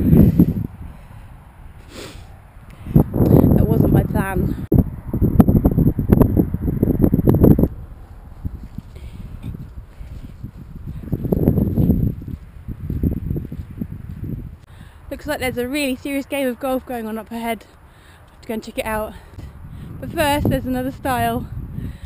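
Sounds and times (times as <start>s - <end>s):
wind gusting across microphone: 0.0s - 22.0s
handling noise rumbling and crackling: 7.4s - 14.7s.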